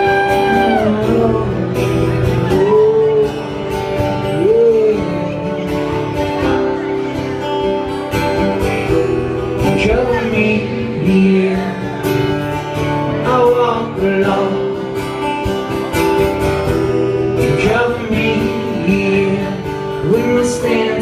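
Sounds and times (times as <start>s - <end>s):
acoustic guitars strumming: 0.0s - 21.0s.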